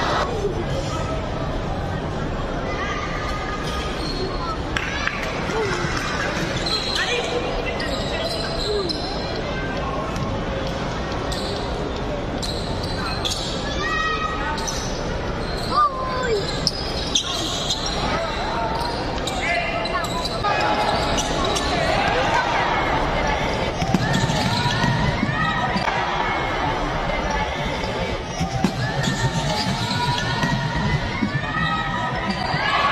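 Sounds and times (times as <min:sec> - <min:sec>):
spectators' voices: 0:00.0 - 0:32.9.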